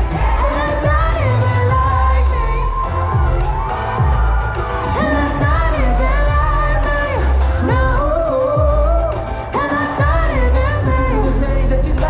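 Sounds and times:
amplified backing beat: 0:00.0 - 0:12.0
male vocal group singing: 0:05.0 - 0:12.0.

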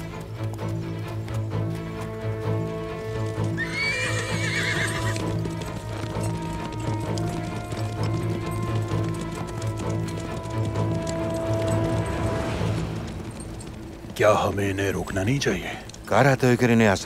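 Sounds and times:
dramatic background music: 0:00.0 - 0:17.0
hooves clopping: 0:00.0 - 0:17.0
horse whinnying: 0:03.2 - 0:12.4.

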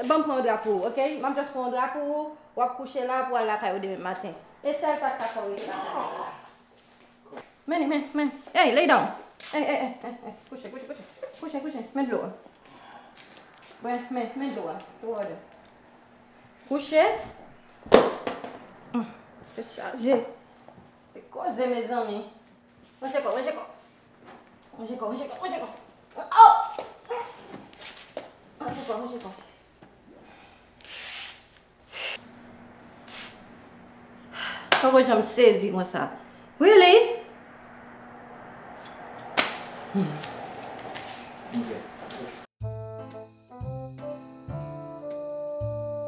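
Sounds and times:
woman muttering: 0:05.6 - 0:06.6, 0:18.9 - 0:19.3, 0:39.9 - 0:40.4
sharp snap: 0:39.3 - 0:39.7.

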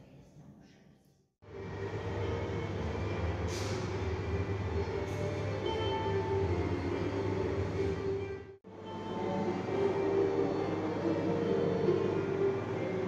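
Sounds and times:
loud mechanical rumble: 0:01.4 - 0:13.0.

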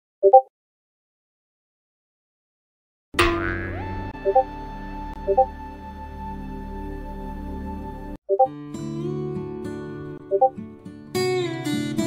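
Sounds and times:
springy sound effect: 0:03.2 - 0:04.6
background music: 0:03.4 - 0:10.6.

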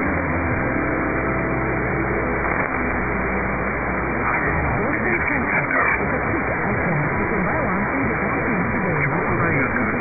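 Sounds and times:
radio static hiss: 0:02.2 - 0:10.0
muffled radio voice: 0:04.8 - 0:10.0.

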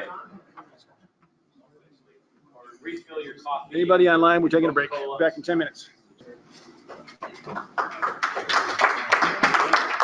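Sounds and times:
audience applauding: 0:07.2 - 0:10.0.

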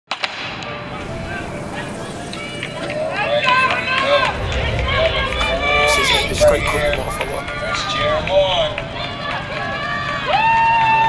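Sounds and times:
raised voices calling out: 0:05.3 - 0:07.8.

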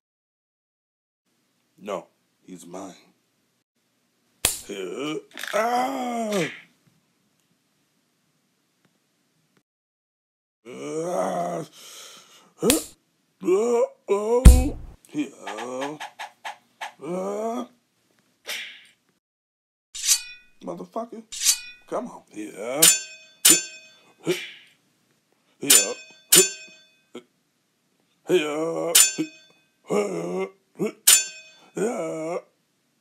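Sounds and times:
fighter grunting: 0:13.4 - 0:16.0, 0:31.8 - 0:32.5
sharp hit sound: 0:14.5 - 0:15.0
sword blades clashing: 0:20.0 - 0:20.6, 0:21.4 - 0:21.9, 0:22.8 - 0:24.0, 0:25.7 - 0:26.8, 0:29.0 - 0:29.5, 0:31.1 - 0:31.6.

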